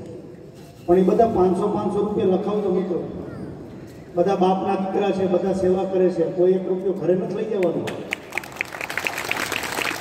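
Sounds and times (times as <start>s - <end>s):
audience applauding: 7.9s - 10.0s.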